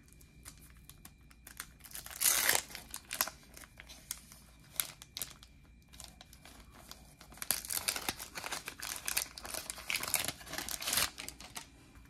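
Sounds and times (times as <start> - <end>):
paper wrapper crinkling and tearing: 0.0 - 11.8.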